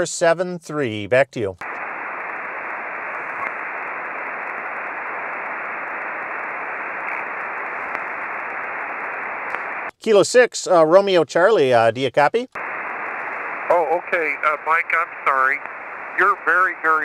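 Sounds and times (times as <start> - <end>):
radio static hiss: 1.6 - 9.9, 12.6 - 17.0.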